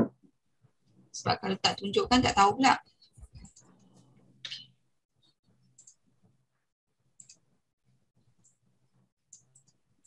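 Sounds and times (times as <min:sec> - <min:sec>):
mouse and keyboard clicks: 0:07.2 - 0:07.5, 0:09.3 - 0:09.8.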